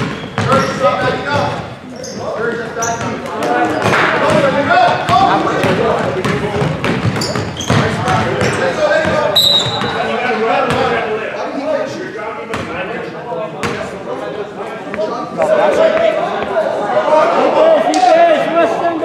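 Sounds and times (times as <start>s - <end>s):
basketball bouncing on hardwood: 0.0s - 0.8s, 4.3s - 10.0s
voices of players and spectators: 0.0s - 19.0s.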